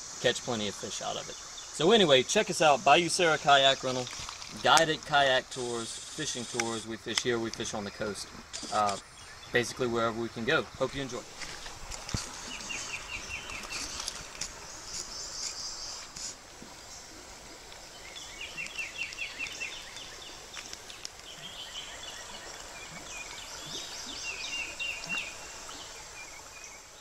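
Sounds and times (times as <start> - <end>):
faint insect hiss: 0.0 - 27.0
birds trilling: 11.0 - 16.2, 17.9 - 27.0.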